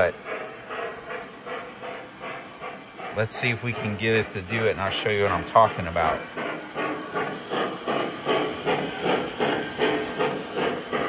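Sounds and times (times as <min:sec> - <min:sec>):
model steam locomotive chuffing: 0:00.0 - 0:11.0.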